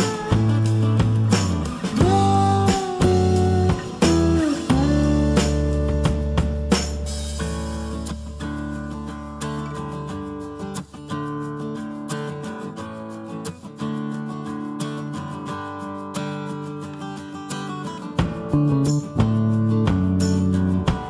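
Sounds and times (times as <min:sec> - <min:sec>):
plucked and strummed guitar: 0:00.0 - 0:21.0.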